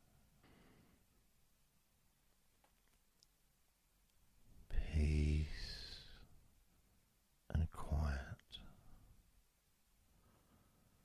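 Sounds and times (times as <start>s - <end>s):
man speaking softly: 4.6s - 6.3s, 7.5s - 8.8s.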